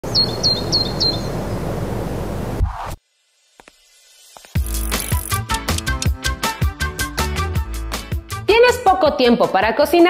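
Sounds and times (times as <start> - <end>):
low outdoor background hum: 0.0 - 5.3
small bird chirping: 0.1 - 1.6.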